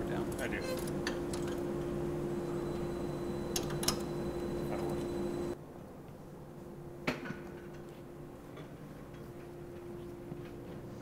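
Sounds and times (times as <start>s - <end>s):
steady machine hum: 0.0s - 11.0s.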